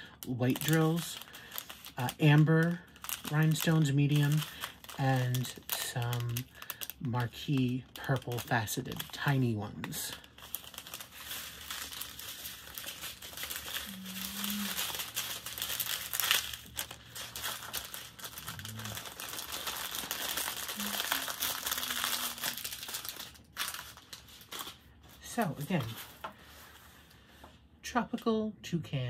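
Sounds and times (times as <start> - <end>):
plastic bags crinkling: 0.0 - 26.5.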